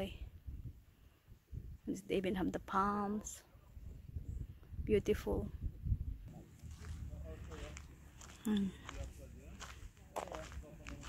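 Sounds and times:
distant voices talking: 6.3s - 11.0s
footsteps on dirt: 6.3s - 11.0s.

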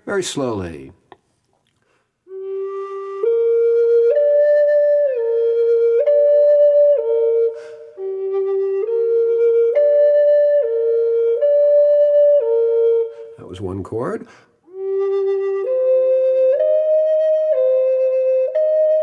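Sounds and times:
short breath: 1.8s - 2.2s, 7.5s - 8.0s, 13.1s - 13.4s, 14.2s - 14.7s
flute held notes: 2.3s - 13.6s, 14.7s - 19.0s.

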